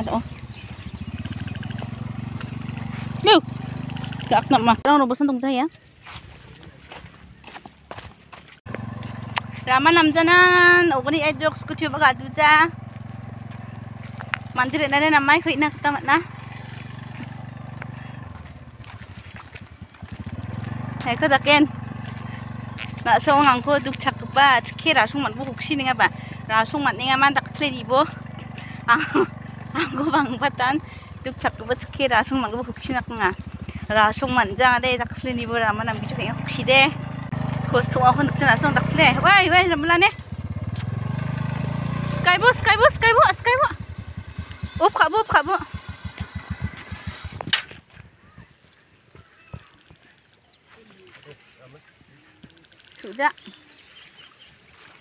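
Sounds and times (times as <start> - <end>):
woman talking: 0.0 - 0.4, 3.1 - 3.6, 4.2 - 5.8, 9.6 - 12.8, 14.5 - 16.3, 21.0 - 21.7, 23.0 - 37.0, 37.6 - 40.2, 42.1 - 43.8, 44.7 - 45.8, 53.0 - 53.6
small engine running: 0.0 - 4.9, 6.8 - 49.7.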